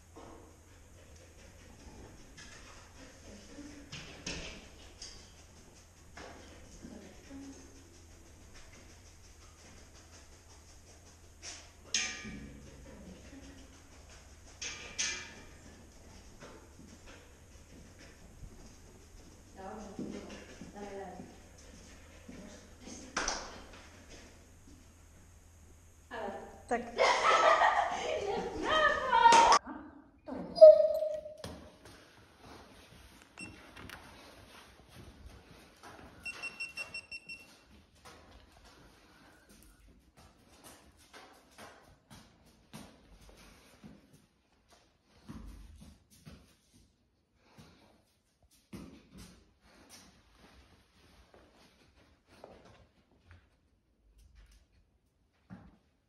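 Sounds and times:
faint low hum: 0.0 - 56.0.

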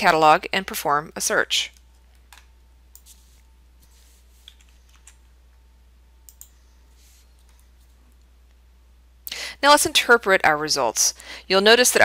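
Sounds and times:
low steady hum: 0.0 - 12.0
keyboard and mouse clicks: 6.3 - 6.6.

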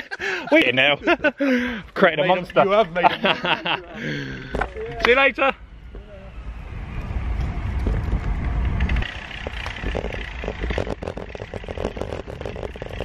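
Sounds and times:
wind rumbling on microphone: 4.5 - 13.0
irregular clicks and rattles: 8.8 - 13.0.

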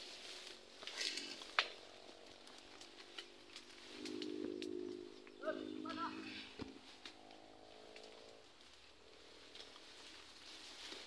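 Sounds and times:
steady low hum: 0.0 - 10.4
twigs and brush crackling: 0.0 - 11.0.

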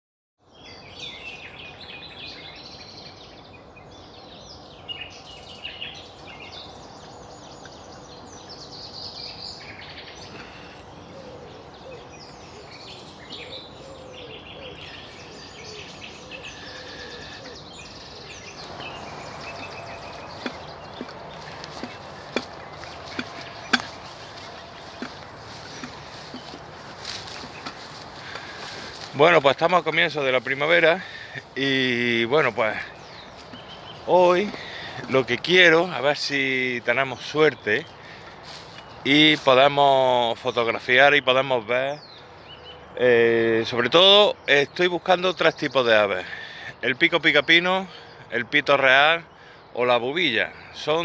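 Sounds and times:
birds singing: 0.4 - 51.0
steady background hiss: 0.6 - 42.5.

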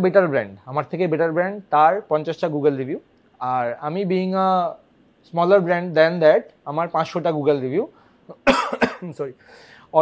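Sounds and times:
man talking: 0.0 - 10.0
man coughing: 8.3 - 9.3.

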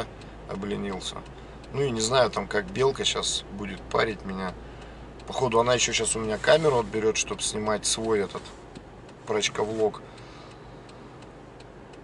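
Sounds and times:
faint light ticking: 0.0 - 12.0
low steady hum: 0.0 - 12.0.

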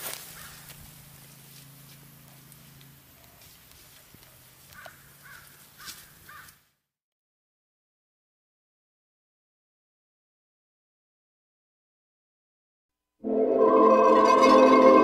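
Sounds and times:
bird calling: 0.2 - 0.8, 4.3 - 6.6.

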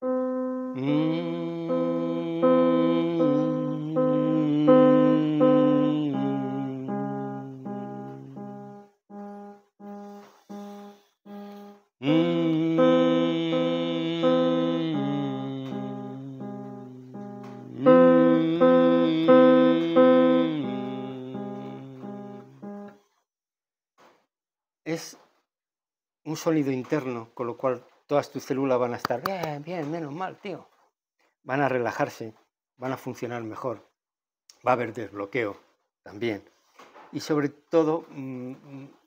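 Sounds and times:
slow piano playing: 0.0 - 23.0.

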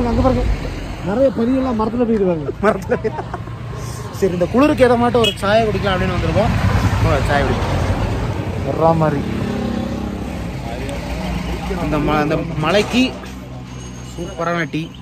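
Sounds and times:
men talking: 0.0 - 15.0
vehicle engine humming: 0.0 - 15.0.

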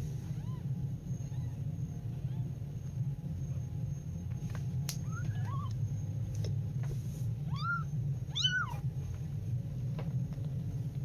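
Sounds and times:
steady low hum: 0.0 - 11.0
kittens mewing: 5.0 - 5.9, 7.4 - 9.0.

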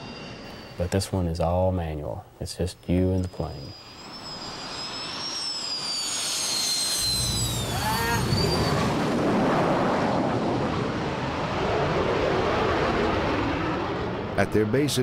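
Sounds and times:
jet turbine whine: 0.0 - 15.0.

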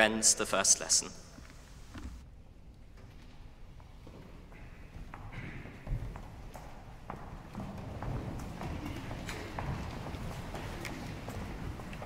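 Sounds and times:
footsteps and shuffling: 1.2 - 12.0.

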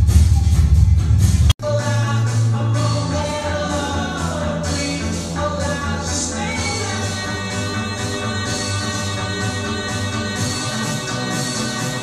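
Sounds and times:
background music with singing: 0.0 - 12.0.

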